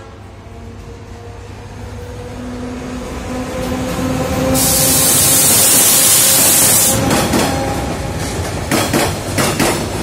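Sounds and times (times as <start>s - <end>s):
diesel locomotive engine hum: 0.0s - 10.0s
loud hiss: 4.6s - 7.0s.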